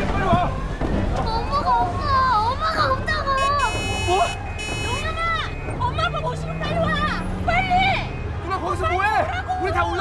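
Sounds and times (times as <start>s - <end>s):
crowd commotion: 0.0s - 10.0s.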